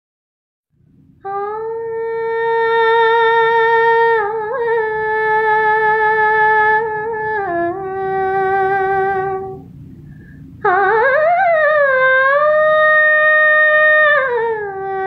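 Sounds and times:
woman singing wordless notes: 0:01.2 - 0:09.7, 0:10.6 - 0:15.0.

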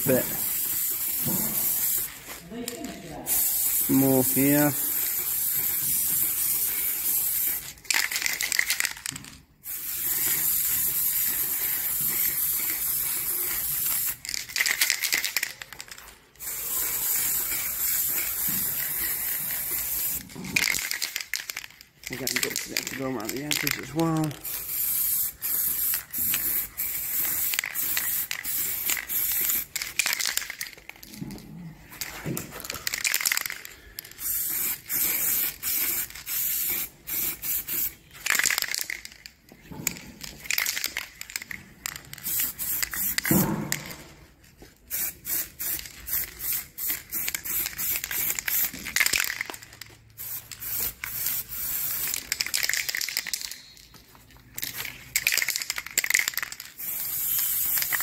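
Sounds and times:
spray paint can hissing: 0:00.0 - 0:02.4, 0:03.3 - 0:21.6, 0:22.3 - 0:30.7, 0:32.8 - 0:39.1, 0:42.2 - 0:43.4, 0:44.9 - 0:53.7, 0:54.7 - 0:58.0.

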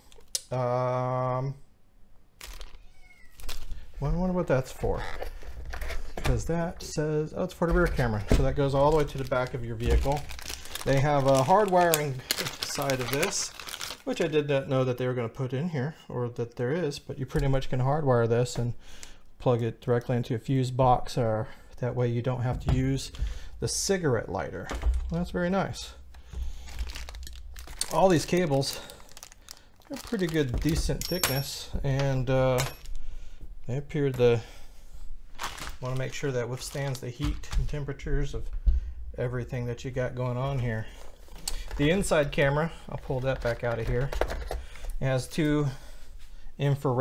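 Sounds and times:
plastic bags rustling: 0:02.4 - 0:06.7, 0:07.4 - 0:15.2, 0:22.5 - 0:33.3, 0:34.0 - 0:38.5, 0:39.9 - 0:46.3
cat meowing faintly: 0:02.7 - 0:03.5.

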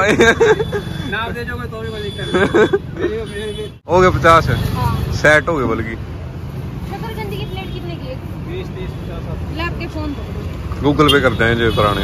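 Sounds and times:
low rumble of street traffic: 0:00.0 - 0:12.0
motorbikes passing: 0:00.0 - 0:12.0.

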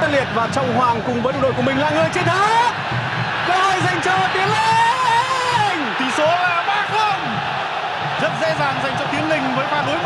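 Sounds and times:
stadium crowd noise: 0:00.0 - 0:10.0
commentator shouting excitedly: 0:03.4 - 0:07.5.

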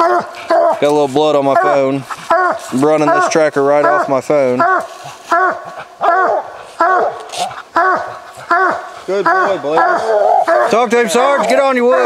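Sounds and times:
dog baying: 0:00.0 - 0:00.9, 0:01.5 - 0:12.0.

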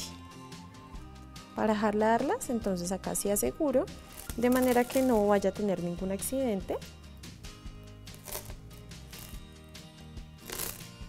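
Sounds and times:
soft background music: 0:00.0 - 0:11.0
beads clicking along a thread: 0:10.4 - 0:10.9.

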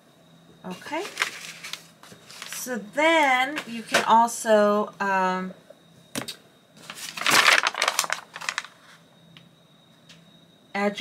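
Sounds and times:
paper rustling: 0:00.9 - 0:02.7, 0:06.8 - 0:09.0.

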